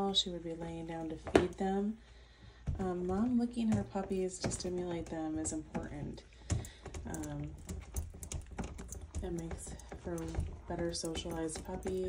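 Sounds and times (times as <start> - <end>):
light clicks and taps: 2.6 - 12.0.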